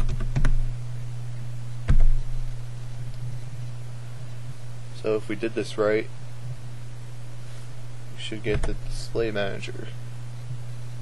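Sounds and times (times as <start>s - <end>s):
keyboard typing: 0.0s - 0.6s.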